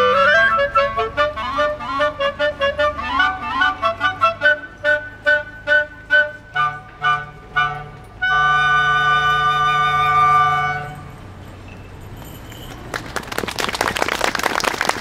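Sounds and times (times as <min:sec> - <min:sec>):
flute and clarinet ensemble: 0:00.0 - 0:11.1.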